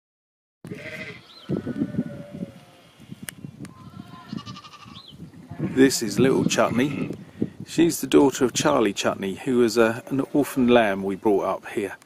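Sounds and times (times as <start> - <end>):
sheep bleating: 0.7 - 7.2
bird chirp: 1.2 - 1.6, 4.7 - 5.5.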